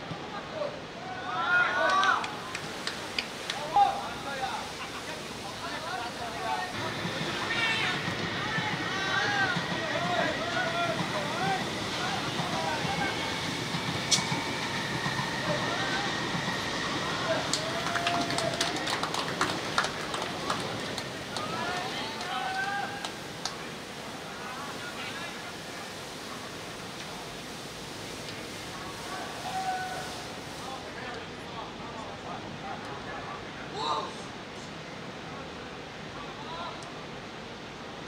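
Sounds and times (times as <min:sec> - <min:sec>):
quick hand claps: 0:17.5 - 0:23.6.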